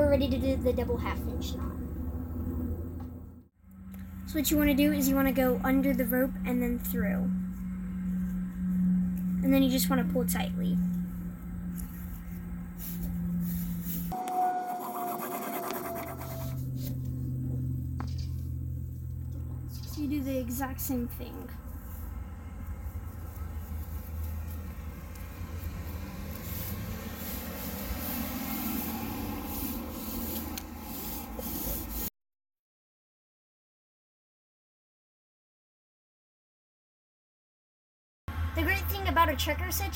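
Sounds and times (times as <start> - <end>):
low rumble: 0.0 - 14.2, 15.8 - 32.0
low hum: 0.0 - 32.1
rope rustling and scraping: 7.4 - 9.4, 10.8 - 14.2, 21.4 - 32.1.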